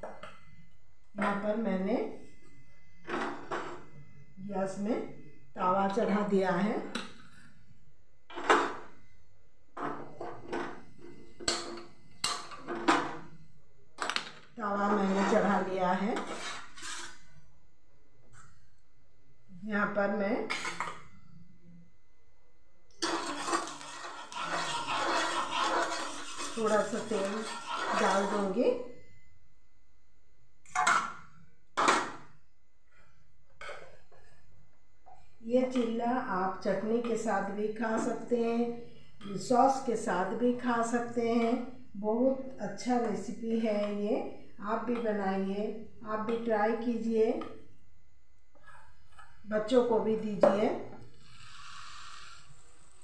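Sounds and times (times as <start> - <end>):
batter sizzling on hot pan: 23.0 - 28.4.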